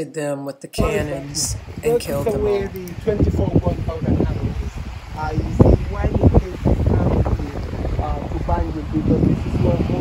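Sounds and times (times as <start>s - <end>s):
person speaking: 0.0s - 9.2s
low rumble: 0.8s - 10.0s
wind buffeting microphone: 0.8s - 10.0s.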